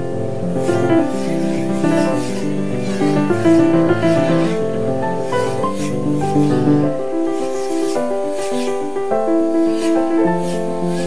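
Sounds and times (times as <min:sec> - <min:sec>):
piano music: 0:00.0 - 0:11.0.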